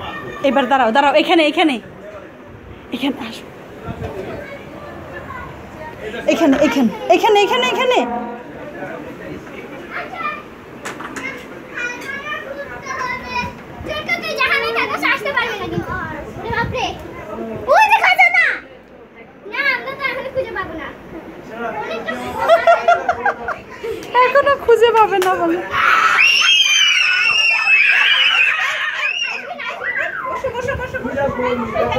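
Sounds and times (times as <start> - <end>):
children talking and calling out: 0.0 - 1.8, 3.0 - 31.9.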